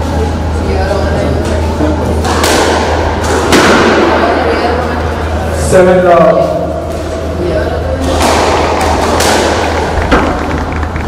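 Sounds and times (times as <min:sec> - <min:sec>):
squash ball cracks: 0:02.2 - 0:04.2, 0:08.0 - 0:11.0.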